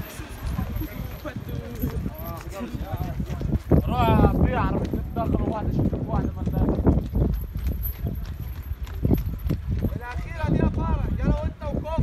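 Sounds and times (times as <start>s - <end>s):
horse hooves clopping on hard ground: 0.0s - 12.0s.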